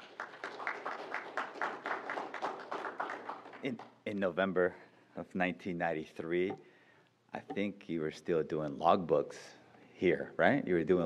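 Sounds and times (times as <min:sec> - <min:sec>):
audience applauding: 0:00.0 - 0:03.9.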